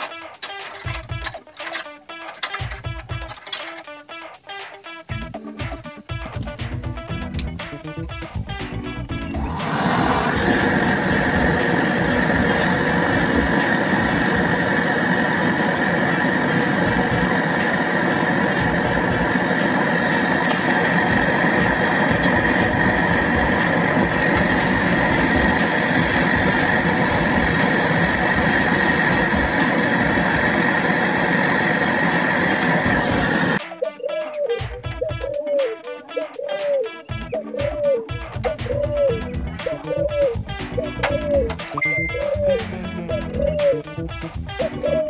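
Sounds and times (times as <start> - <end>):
gas torch hissing: 8.4 - 33.6
gas torch lighting: 8.6 - 33.6.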